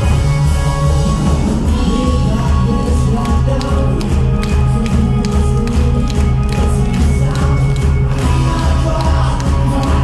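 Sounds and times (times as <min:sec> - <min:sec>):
electric guitar: 0:00.0 - 0:10.0
live rock band playing: 0:00.0 - 0:10.0.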